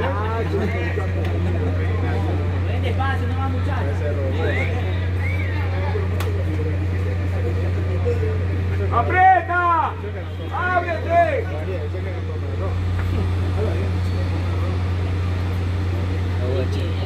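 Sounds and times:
faint scattered voices: 0.0 - 17.0
steady low hum: 0.0 - 17.0.

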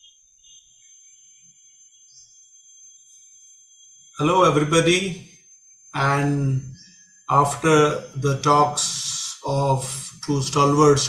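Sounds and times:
high-pitched electronic whine: 0.0 - 11.0
low room hiss: 6.0 - 11.0.

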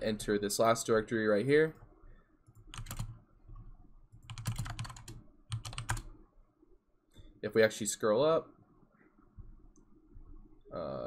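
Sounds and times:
computer keyboard typing: 2.5 - 3.2, 4.1 - 6.1.

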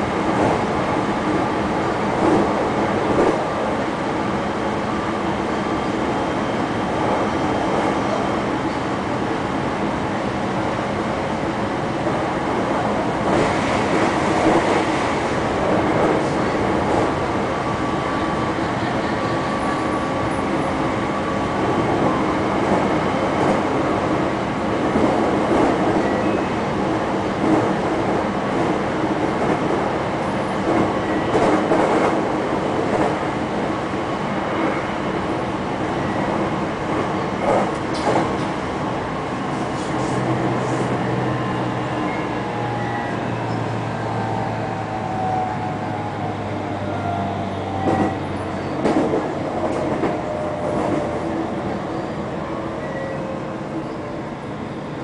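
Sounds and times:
train running rumble: 0.0 - 55.0.

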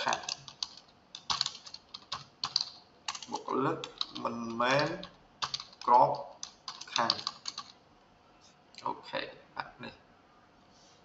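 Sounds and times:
keyboard typing: 0.0 - 7.8.

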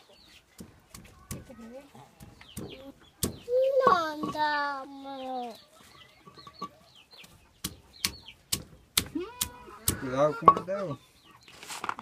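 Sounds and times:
chickens calling: 0.0 - 12.0.

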